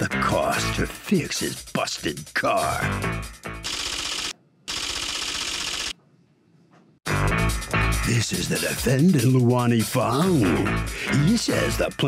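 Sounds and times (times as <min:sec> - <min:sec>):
typewriter clicking sound effect: 0:03.6 - 0:05.9.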